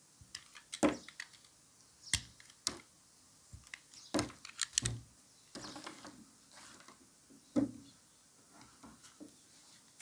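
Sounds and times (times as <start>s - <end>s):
clicking and rustling of hands: 0.3s - 2.9s, 3.6s - 5.0s
small clicks: 3.6s - 5.0s.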